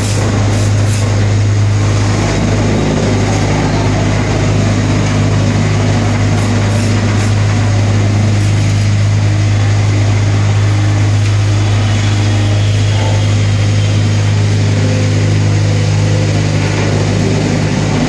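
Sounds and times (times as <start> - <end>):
machine vibrating table hum: 0.0 - 18.0.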